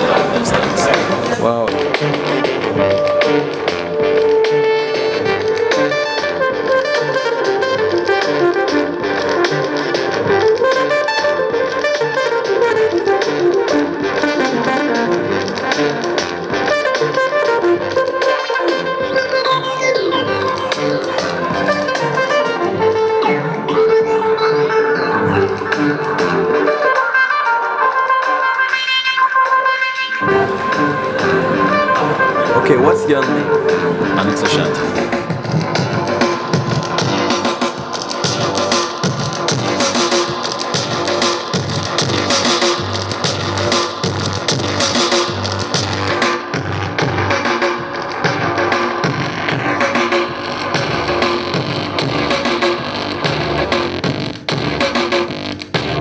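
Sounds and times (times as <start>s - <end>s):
electronic synth music: 0.0s - 55.0s.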